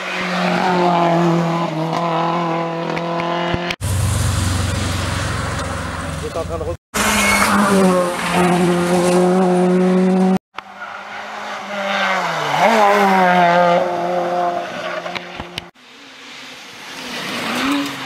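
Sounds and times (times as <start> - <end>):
rally car engines at high revs: 0.0 - 3.8, 6.2 - 15.7, 16.3 - 18.0.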